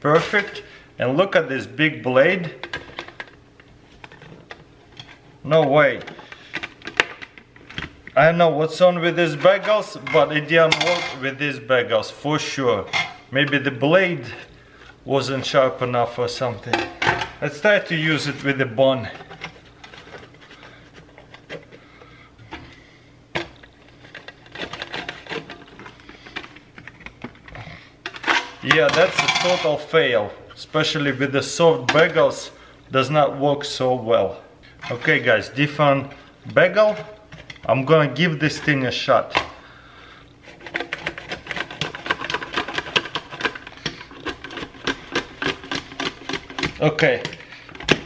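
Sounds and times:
bagel slicer crunching bagel: 0:23.9 - 0:26.6, 0:40.4 - 0:47.3.

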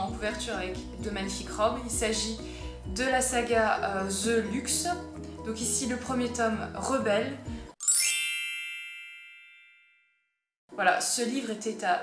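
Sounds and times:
bright bell ding: 0:07.8 - 0:10.2.

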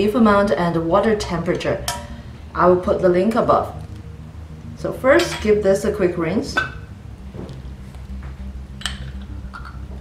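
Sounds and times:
soft music with low bass: 0:00.0 - 0:10.0.

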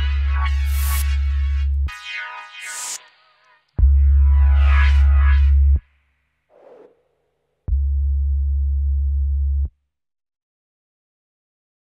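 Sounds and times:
deep electronic bass tone: 0:00.0 - 0:01.9, 0:03.8 - 0:05.8, 0:07.7 - 0:09.7.

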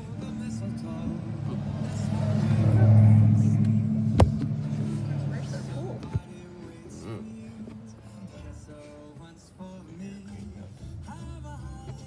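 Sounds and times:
car engine and road drone: 0:00.0 - 0:12.0.

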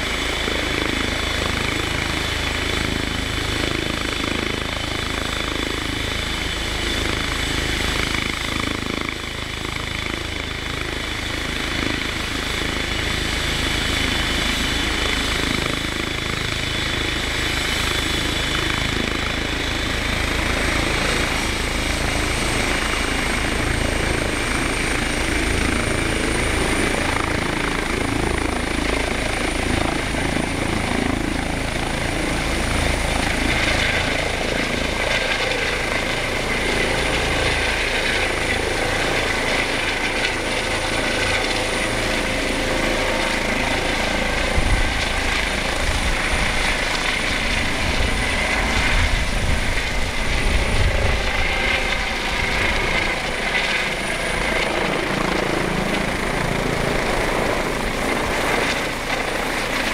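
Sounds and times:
helicopter turbine and rotor noise: 0:00.0 - 0:59.9.

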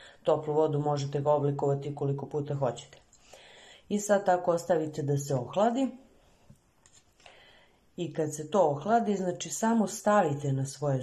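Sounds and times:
soft hiss: 0:02.6 - 0:10.0.

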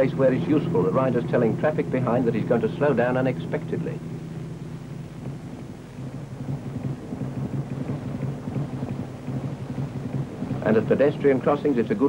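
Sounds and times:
rumbling crackly noise: 0:00.0 - 0:12.0
steady low hum: 0:00.0 - 0:12.0.

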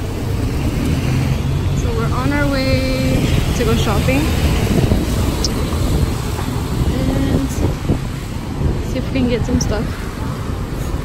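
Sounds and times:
low rumble of vehicles: 0:00.0 - 0:11.0
tyres hissing on wet road: 0:00.0 - 0:11.0.

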